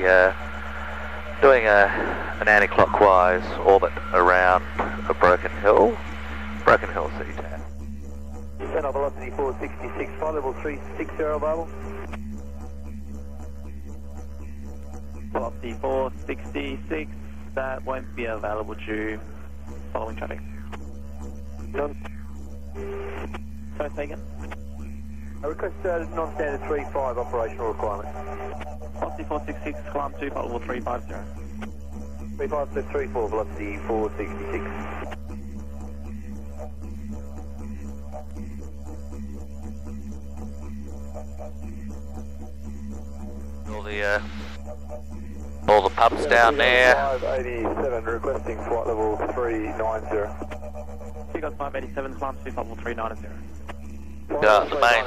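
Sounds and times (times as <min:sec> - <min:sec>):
didgeridoo drone: 0:00.0 - 0:55.0.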